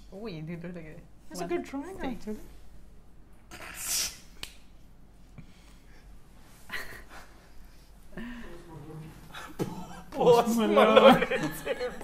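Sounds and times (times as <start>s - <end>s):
breath or mouth clicks: 3.5s - 4.6s.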